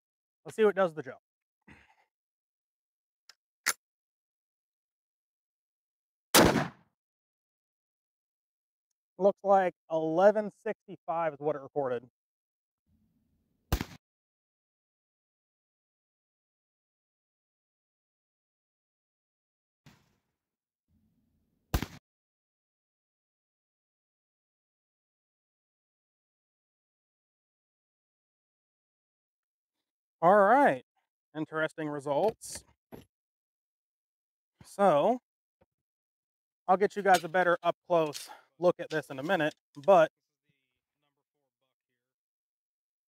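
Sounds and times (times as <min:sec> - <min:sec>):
shotgun blast: 0:06.3 - 0:06.8, 0:13.7 - 0:14.0, 0:21.7 - 0:22.0
shotgun bang: 0:06.4 - 0:06.8.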